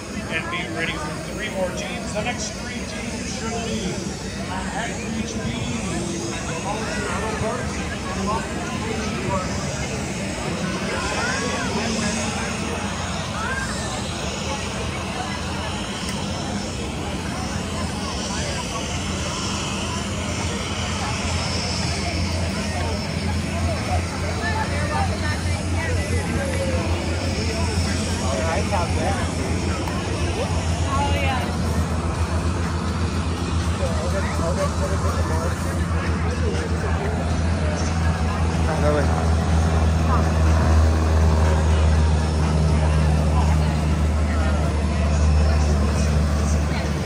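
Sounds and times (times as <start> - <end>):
crowd chatter: 0.0 - 47.0
low engine drone: 0.0 - 47.0.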